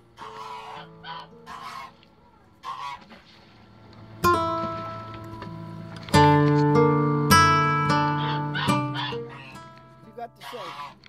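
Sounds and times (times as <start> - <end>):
goose honking: 0.0 - 11.0.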